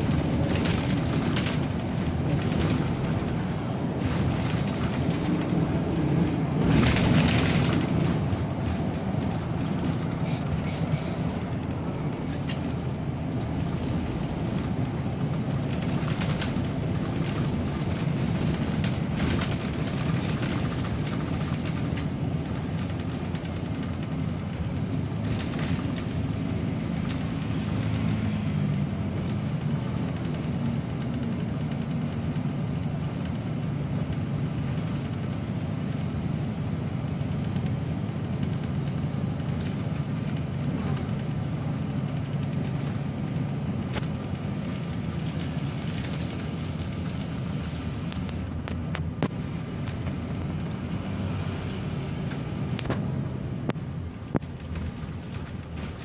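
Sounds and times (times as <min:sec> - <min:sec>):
bus engine drone: 0:00.0 - 0:56.0
road rumble: 0:00.0 - 0:56.0.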